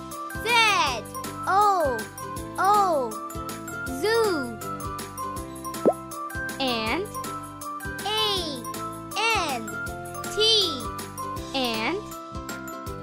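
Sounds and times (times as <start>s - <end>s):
children's background music: 0.0s - 13.0s.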